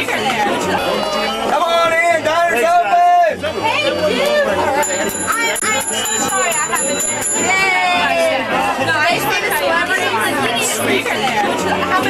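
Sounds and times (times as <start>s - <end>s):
people talking over one another: 0.0s - 12.0s
music playing: 4.6s - 12.0s.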